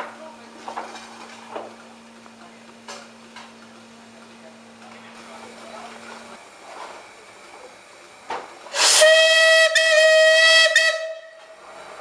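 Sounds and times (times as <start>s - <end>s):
steam rushing: 8.6s - 12.0s
steam locomotive whistle: 8.7s - 11.7s.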